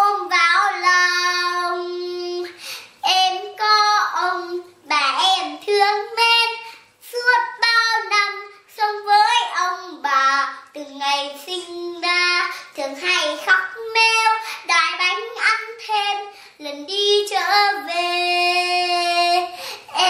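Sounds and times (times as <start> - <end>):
girl singing unaccompanied: 0.0 - 20.0.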